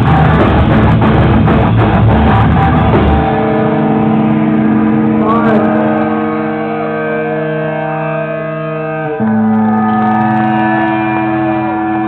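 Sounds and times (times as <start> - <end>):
electric guitar chord droning: 0.0 - 12.0
guitar pitch bends: 0.0 - 12.0.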